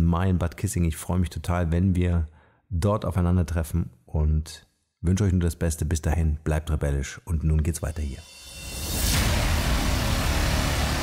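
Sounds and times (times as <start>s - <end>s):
music: 8.2s - 11.0s
noise and rumble sound effect: 8.4s - 11.0s.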